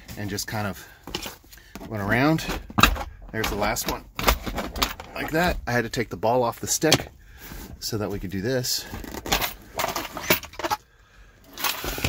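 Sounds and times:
plastic rustling and scraping: 11.6 - 12.0.

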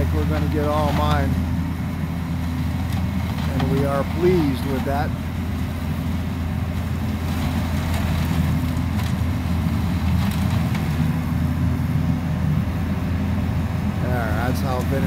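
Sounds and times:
leaf vacuum drone: 0.0 - 15.0.

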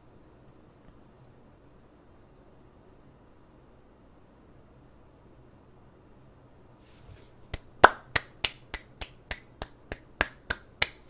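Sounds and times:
fingers snapping: 7.5 - 11.0.

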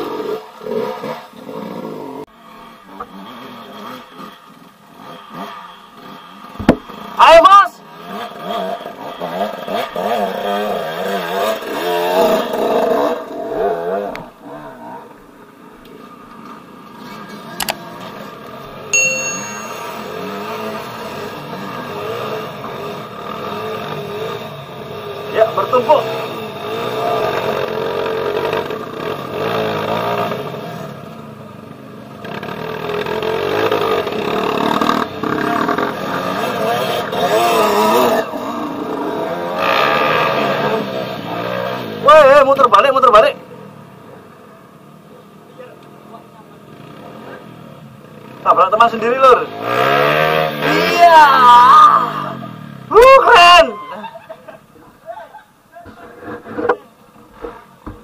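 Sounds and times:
motorcycle engines revving: 0.0 - 58.0.

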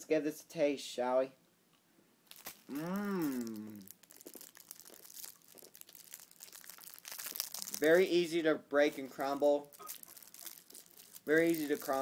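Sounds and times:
candy crackling while chewed: 2.3 - 8.3, 9.2 - 12.0.

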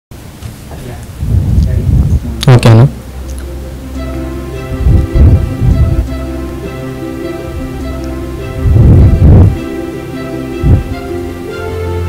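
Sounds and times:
deep low rumbling: 1.1 - 11.5.

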